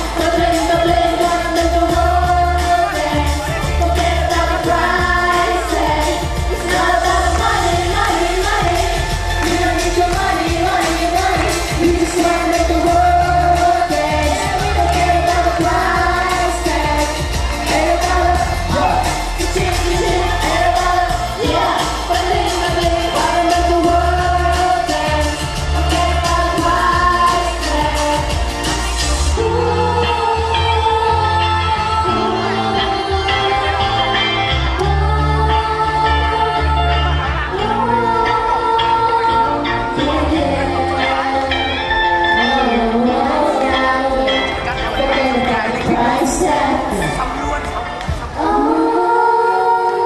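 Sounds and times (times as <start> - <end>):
backing track with heavy bass: 0.0 - 50.0
voices singing pop song: 0.0 - 50.0.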